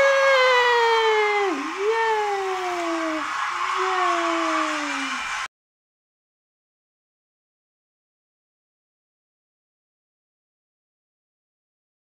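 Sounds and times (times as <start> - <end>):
person whooping in celebration: 0.0 - 5.5
steady hiss: 1.5 - 5.5.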